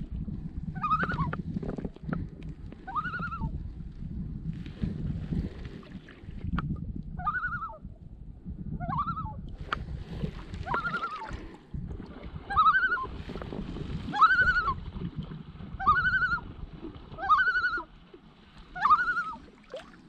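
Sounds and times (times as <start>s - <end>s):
wind on microphone: 0.0s - 19.5s
paddle washing in water: 4.6s - 6.6s, 9.6s - 20.0s
loon tremolo calls: 14.1s - 14.8s, 15.8s - 16.4s, 17.2s - 17.9s, 18.8s - 19.4s.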